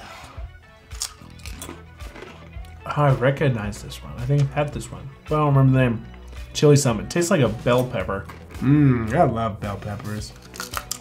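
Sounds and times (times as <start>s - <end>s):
quiet background music: 0.0s - 11.0s
crunchy chips being chewed: 0.9s - 2.8s, 10.3s - 11.0s.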